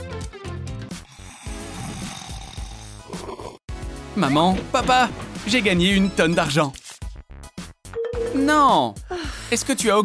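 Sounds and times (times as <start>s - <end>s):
background music: 0.0s - 10.0s
man snoring: 0.9s - 3.7s.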